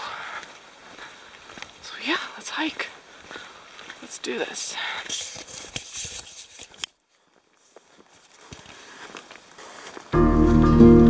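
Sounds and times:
faint outdoor background: 0.0s - 11.0s
camera handling noise: 5.1s - 7.0s.

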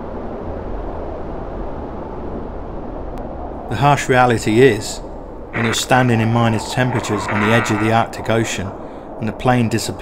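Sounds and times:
steady low rumbling: 5.0s - 9.4s.

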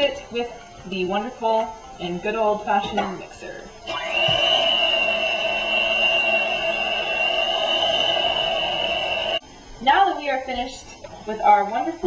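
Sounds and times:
electric hand mixer whining: 3.8s - 9.4s.

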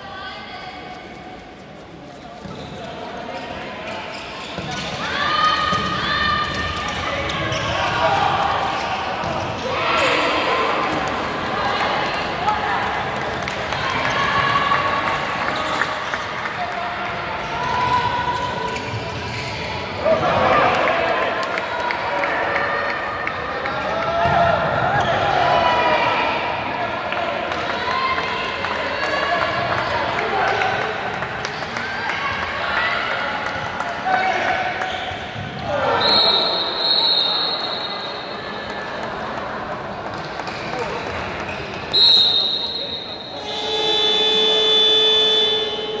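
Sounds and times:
players' voices: 0.0s - 46.0s
ball bouncing on court floor: 5.7s - 7.8s
referee's whistle: 36.0s - 38.3s, 41.9s - 46.0s
electronic timing horn: 43.4s - 46.0s.

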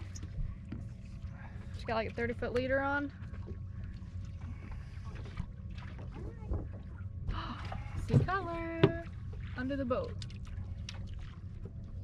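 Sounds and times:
outboard motor idling: 0.0s - 12.0s.

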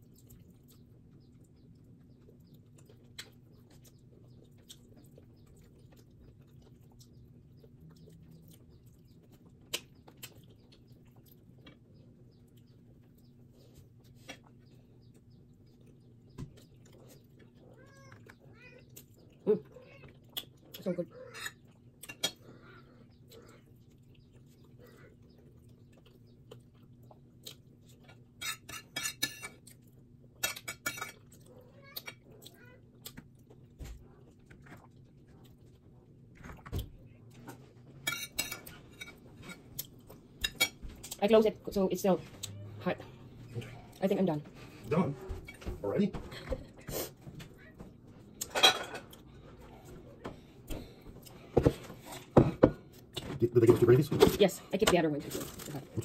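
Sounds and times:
person chewing: 0.0s - 41.2s, 48.2s - 53.2s.

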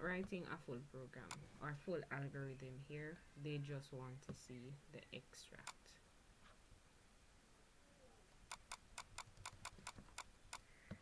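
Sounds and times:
mouse scroll wheel clicking: 8.5s - 11.0s.

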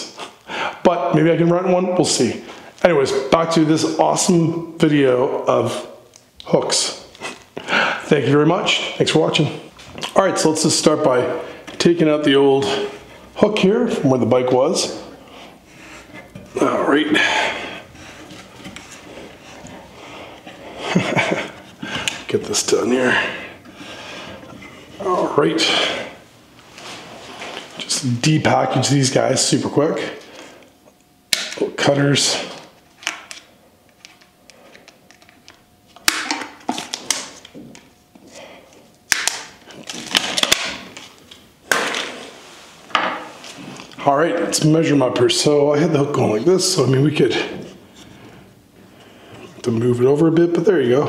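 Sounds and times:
cardboard packaging rustling: 36.2s - 38.2s, 39.0s - 42.4s.

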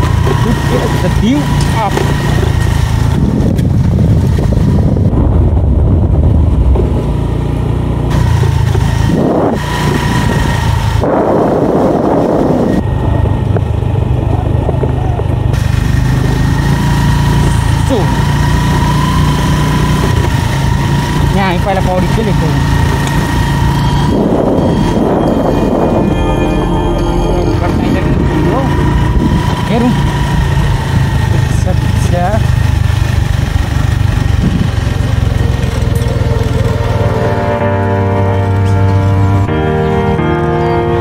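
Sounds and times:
motorcycle engine running: 0.0s - 41.0s.

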